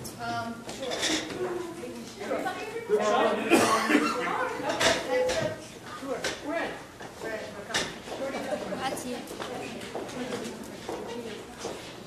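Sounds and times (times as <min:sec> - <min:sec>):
indistinct chatter of voices: 0:00.0 - 0:12.0
person coughing: 0:03.5 - 0:04.2.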